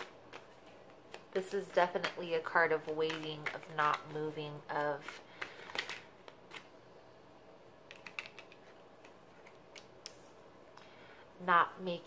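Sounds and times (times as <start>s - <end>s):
tarot cards clicking and snapping: 0.0s - 1.3s, 2.0s - 4.1s, 5.0s - 6.7s, 7.9s - 10.2s.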